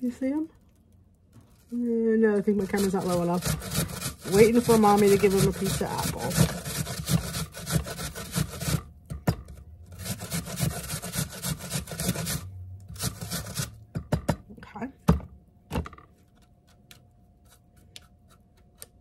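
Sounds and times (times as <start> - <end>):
apple rasping on a grater: 1.6 - 8.9, 9.9 - 13.8.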